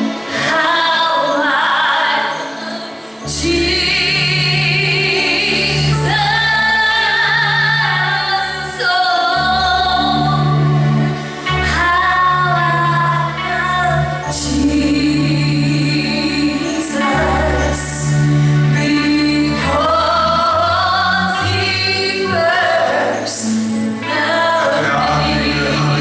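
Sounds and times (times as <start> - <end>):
woman singing into microphone: 0.0 - 26.0
voices singing along: 11.8 - 26.0
long held bass notes: 23.7 - 26.0.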